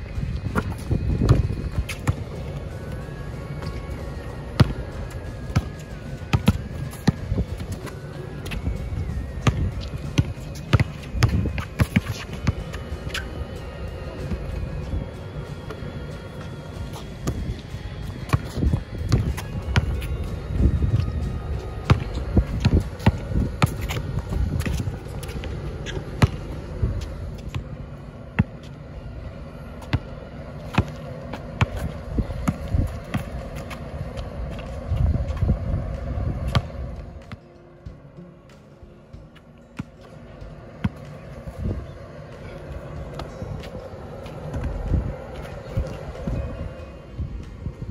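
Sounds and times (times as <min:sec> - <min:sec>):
music playing: 0:00.0 - 0:47.9
basketball bouncing on asphalt: 0:00.4 - 0:02.7, 0:04.4 - 0:04.9, 0:05.5 - 0:08.6, 0:09.4 - 0:13.2, 0:17.2 - 0:17.6, 0:18.2 - 0:20.5, 0:21.6 - 0:27.7, 0:28.3 - 0:28.7, 0:29.7 - 0:37.5, 0:39.8 - 0:41.1.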